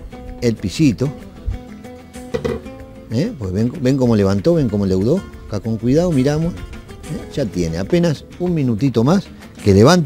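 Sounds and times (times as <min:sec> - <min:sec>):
acoustic guitar music: 0:00.0 - 0:10.0
low thump: 0:02.3 - 0:02.8.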